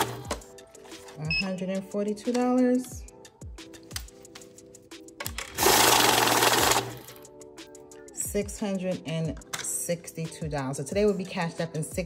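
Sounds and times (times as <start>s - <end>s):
bill counter running: 5.6s - 7.2s.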